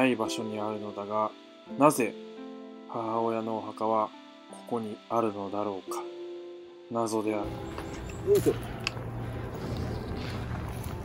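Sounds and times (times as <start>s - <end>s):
wind rumble on microphone: 7.5s - 11.0s.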